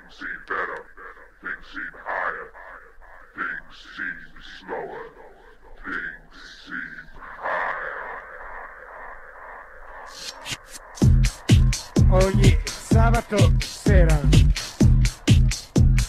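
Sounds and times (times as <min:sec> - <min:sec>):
filtered voice-like fragments: 0:00.0 - 0:14.9
hiss-like swell: 0:06.7 - 0:12.0.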